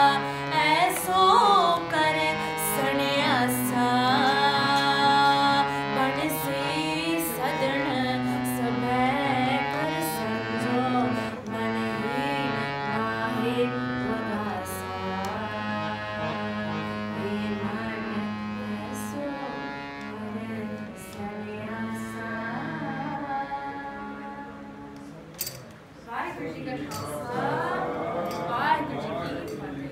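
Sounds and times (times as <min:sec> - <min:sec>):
woman singing: 0:00.0 - 0:25.0
harmonium chords: 0:00.0 - 0:29.9.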